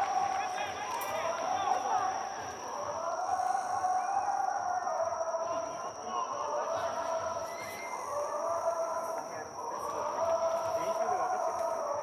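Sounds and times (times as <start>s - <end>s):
murmur from stadium stands: 0.0s - 12.0s.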